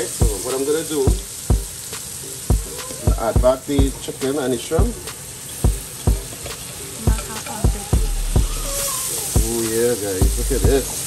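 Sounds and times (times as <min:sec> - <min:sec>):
food sizzling in pan: 0:00.0 - 0:11.0.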